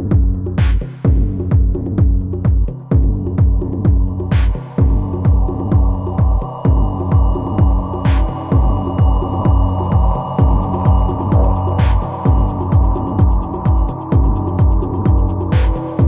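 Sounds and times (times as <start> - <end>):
bass drone: 0.0 - 16.0
deep kick drum: 0.0 - 16.0
ticking hi-hats: 0.0 - 16.0.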